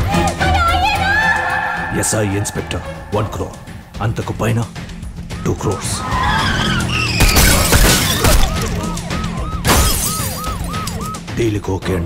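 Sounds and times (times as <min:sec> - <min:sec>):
film score with siren-like tone: 0:00.4 - 0:04.1, 0:05.0 - 0:11.6
tyres screeching on asphalt: 0:05.2 - 0:09.6.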